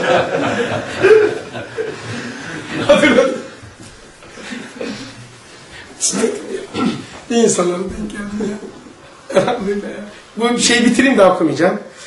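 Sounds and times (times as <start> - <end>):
man chuckling: 0.0 - 3.4.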